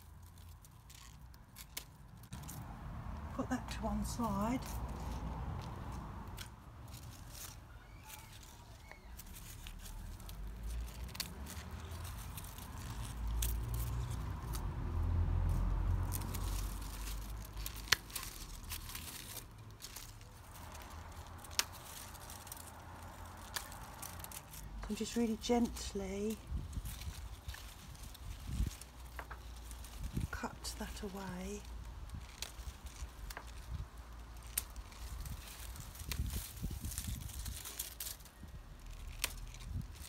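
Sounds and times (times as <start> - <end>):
dry stems crackling and rustling: 0.0 - 40.0.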